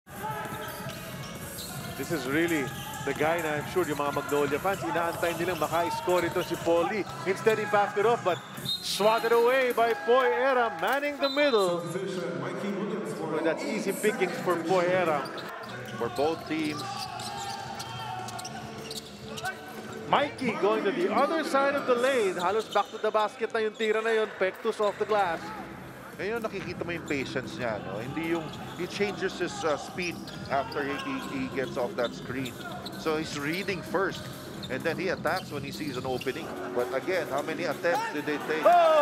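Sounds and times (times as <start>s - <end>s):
sneakers squeaking: 0.1s - 9.9s, 14.2s - 20.8s, 21.8s - 24.0s, 28.0s - 36.7s
players calling out: 14.3s - 22.8s.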